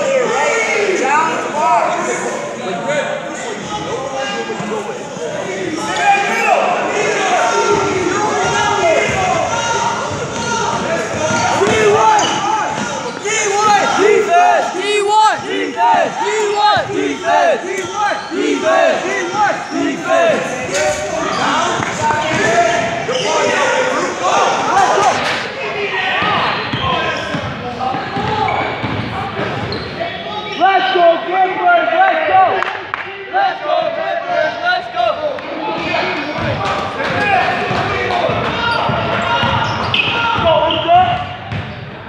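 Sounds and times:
spectators' voices in a hall: 0.0s - 42.0s
sneaker squeaks on gym floor: 11.3s - 13.3s, 26.2s - 30.5s, 38.6s - 41.9s
basketball bouncing: 26.2s - 29.6s, 36.4s - 41.8s.

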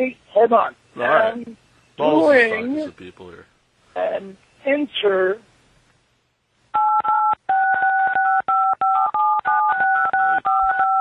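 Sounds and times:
phone keypad beeps: 6.8s - 11.0s.

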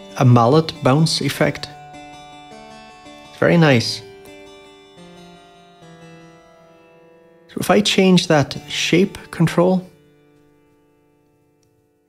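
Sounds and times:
harpsichord notes with reverb: 0.0s - 12.0s.

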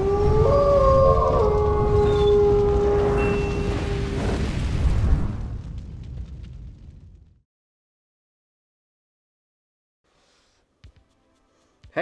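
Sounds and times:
wolf howling: 0.0s - 4.2s.

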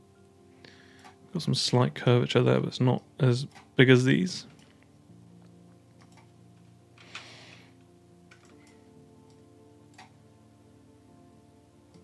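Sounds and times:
faint background music: 0.0s - 12.0s
computer mouse clicks: 6.0s - 6.3s.

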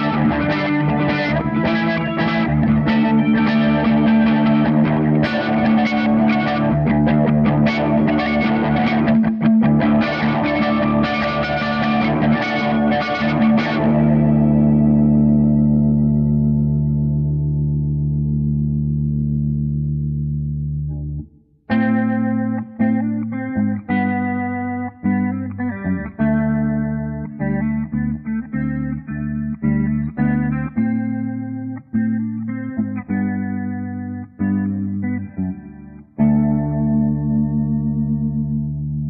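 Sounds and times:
solo electric guitar: 0.0s - 39.0s.

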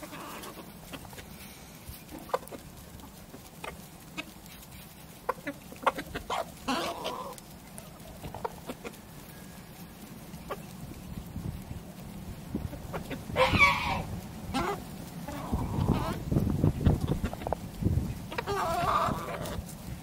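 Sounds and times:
loud chicken call: 0.0s - 2.5s, 5.4s - 9.8s, 12.8s - 17.5s, 18.3s - 19.7s
chickens clucking: 0.0s - 20.0s.

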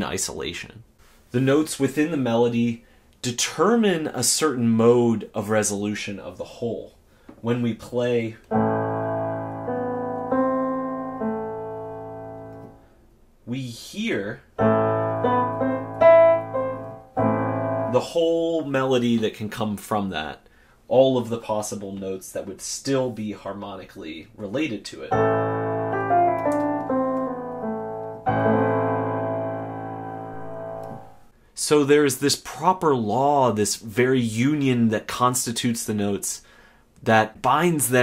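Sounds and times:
piano melody: 8.5s - 12.8s, 14.6s - 18.2s, 25.1s - 31.3s
held low piano note: 25.1s - 31.3s.

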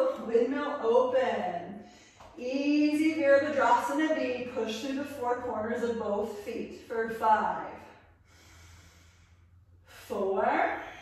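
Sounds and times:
low steady hum: 0.0s - 11.0s
faint breathing: 7.8s - 10.1s.

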